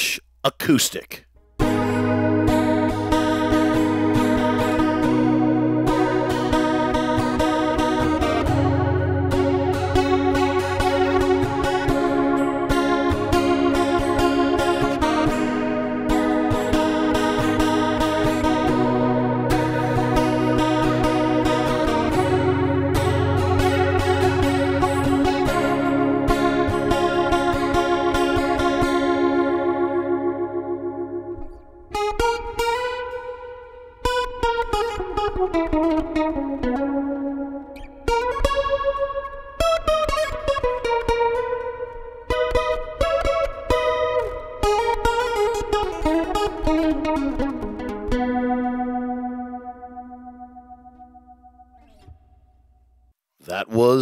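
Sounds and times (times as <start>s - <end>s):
acoustic guitar with reverb: 0.0s - 54.0s.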